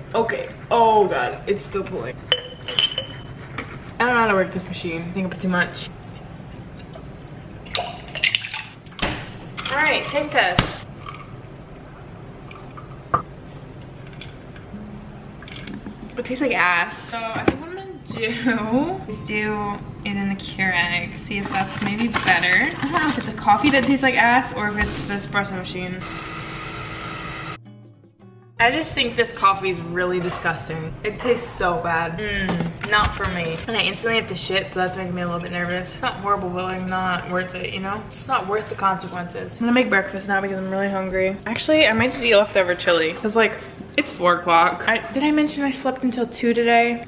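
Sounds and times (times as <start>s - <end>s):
quiet background music: 0.0s - 47.0s
coffee maker pump hum: 26.0s - 27.6s.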